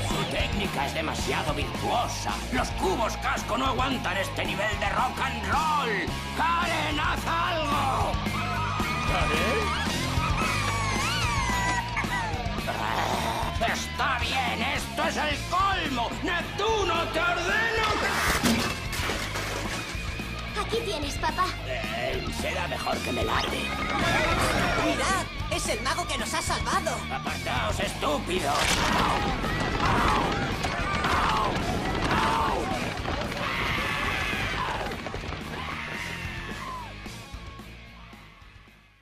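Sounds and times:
voices shouting and yelling: 0.0 - 18.4, 20.4 - 38.7
music: 0.0 - 39.0.

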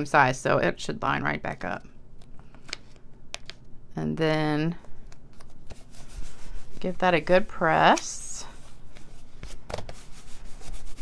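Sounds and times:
hands rubbing paper: 5.6 - 11.0.

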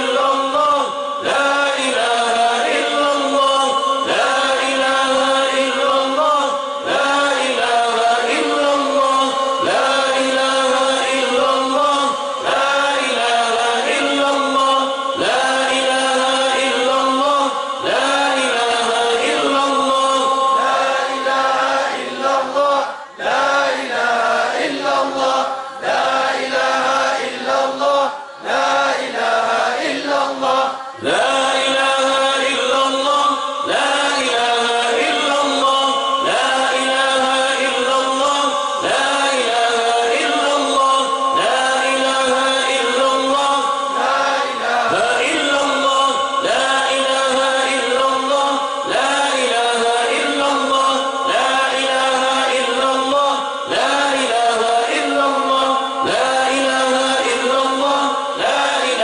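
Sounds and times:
man chanting into a microphone: 0.0 - 59.0
men chanting: 0.0 - 59.0.

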